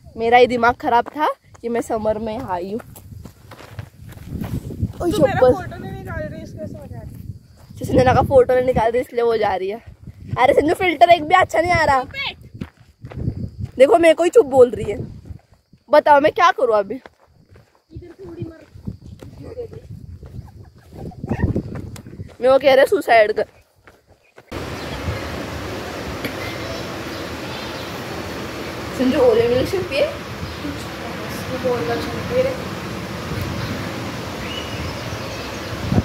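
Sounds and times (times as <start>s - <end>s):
footsteps on dirt track: 0.7s - 8.0s, 9.8s - 24.6s.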